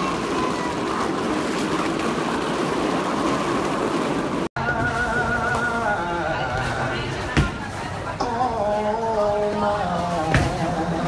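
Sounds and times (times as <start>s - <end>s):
street noise rushing rumble: 0.0s - 11.0s.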